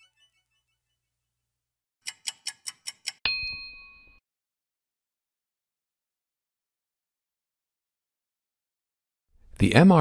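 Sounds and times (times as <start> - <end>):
clock-like ticks: 2.0 - 3.2
bright bell ding: 3.3 - 4.2.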